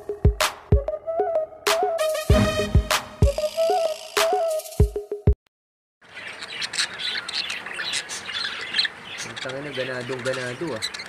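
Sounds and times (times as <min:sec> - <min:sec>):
music track beat: 0:00.0 - 0:05.4
budgerigars chattering: 0:06.1 - 0:11.0.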